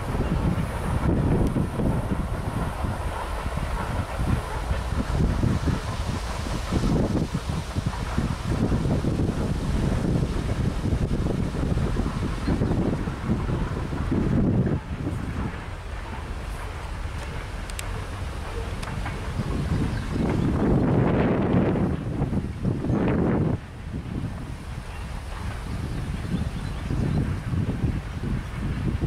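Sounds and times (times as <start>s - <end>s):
freight cars rumbling on rails: 0.0s - 29.0s
wind buffeting microphone: 0.0s - 29.0s.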